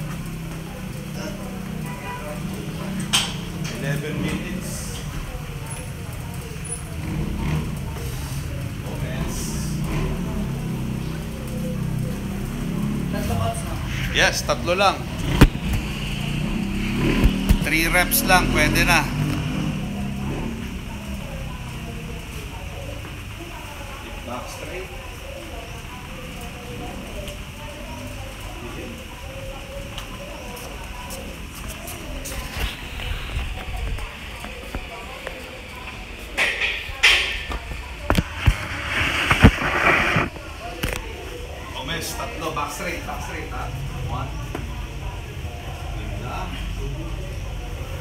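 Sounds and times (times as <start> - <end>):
voices: 0.0 - 48.0.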